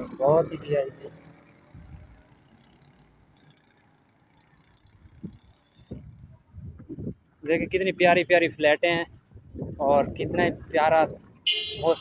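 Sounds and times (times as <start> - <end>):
faint road traffic rumble: 0.0 - 12.0.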